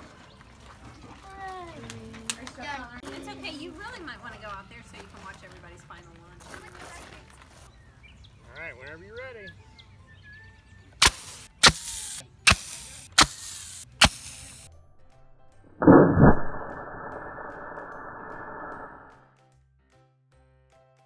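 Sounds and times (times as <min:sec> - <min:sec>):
sharp cracks: 0:11.0 - 0:14.7.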